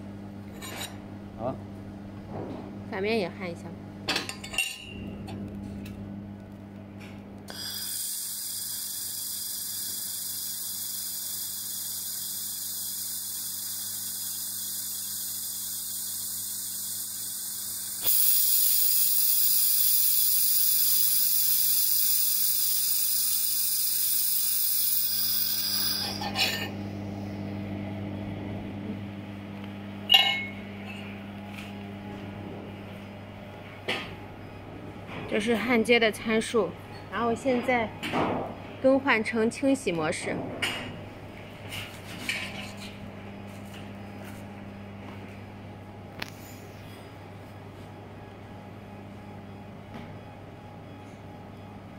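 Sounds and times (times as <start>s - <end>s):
low electrical hum: 0.0s - 51.9s
laser welder hiss and whine: 7.5s - 26.7s.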